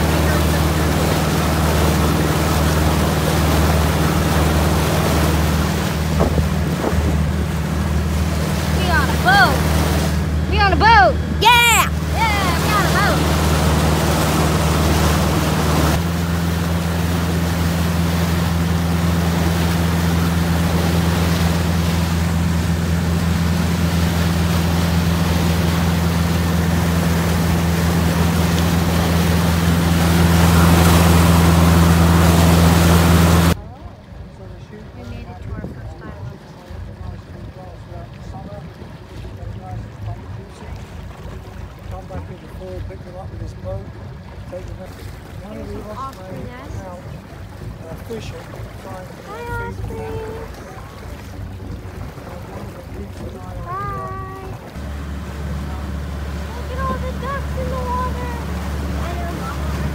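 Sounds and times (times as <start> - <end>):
churning wake rushing: 0.0 - 59.9
motorboat engine running: 0.0 - 59.9
water background: 0.0 - 59.9.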